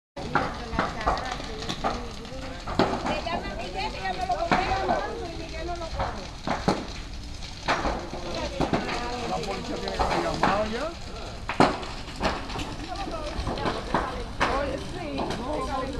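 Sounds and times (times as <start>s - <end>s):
people talking: 0.2s - 6.3s, 8.1s - 11.4s, 12.5s - 15.9s
fire cracking and popping: 0.2s - 15.9s.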